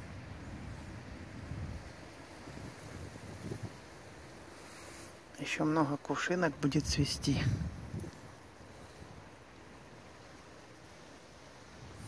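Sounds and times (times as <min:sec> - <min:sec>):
wind rumbling on microphone: 0:00.0 - 0:05.2, 0:06.5 - 0:12.0
faint outdoor hiss: 0:00.0 - 0:12.0.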